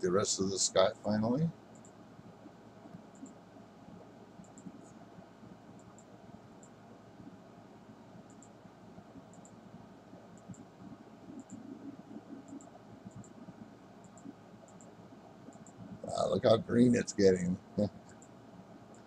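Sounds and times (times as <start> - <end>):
low steady hiss: 0.0 - 19.0
computer mouse clicks: 1.7 - 2.0, 2.8 - 3.4, 4.4 - 5.0, 5.8 - 6.8, 8.2 - 8.6, 9.2 - 16.0, 18.0 - 19.0.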